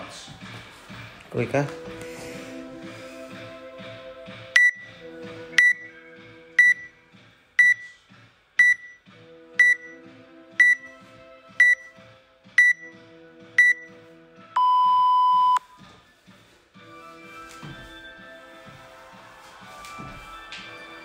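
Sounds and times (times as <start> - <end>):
background music with beat: 0.0 - 14.6, 15.5 - 21.0
timer short high beeps: 4.6 - 4.9, 5.6 - 5.9, 6.6 - 6.9, 7.6 - 7.8, 8.6 - 9.0, 9.6 - 10.0, 10.6 - 10.8, 11.6 - 11.8.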